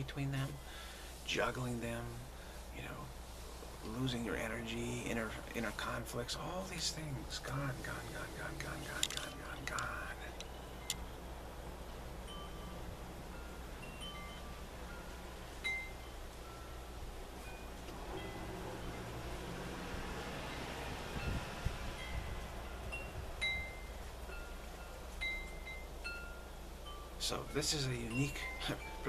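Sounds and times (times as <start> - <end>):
steady low hum: 0.0 - 29.0
wind chimes ringing: 12.2 - 29.0.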